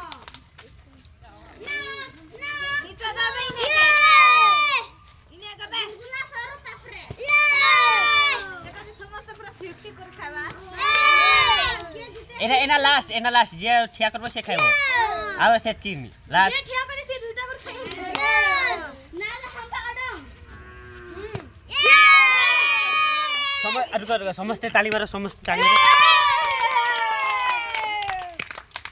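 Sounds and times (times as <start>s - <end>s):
children shouting in celebration: 3.5s - 4.9s, 7.2s - 8.6s, 10.8s - 11.9s, 21.7s - 23.9s, 25.6s - 28.4s.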